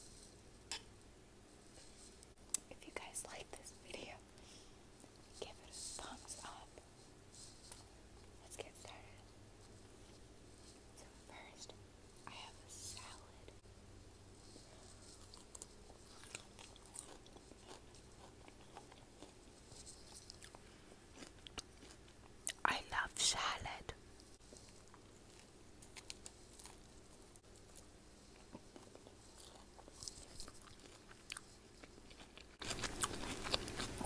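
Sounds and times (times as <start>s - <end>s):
person chewing food: 14.6s - 22.6s, 24.4s - 34.0s.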